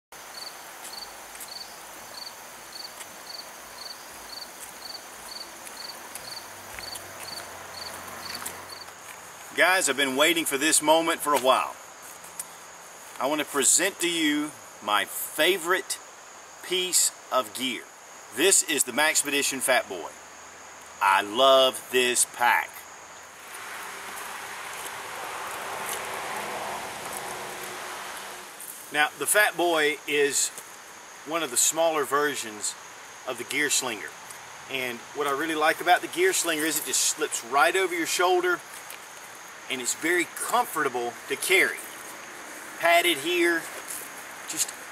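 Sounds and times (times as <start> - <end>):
faint steady hiss: 0.2 - 44.9
insect chirping: 0.2 - 44.9
water rushing: 23.4 - 28.6.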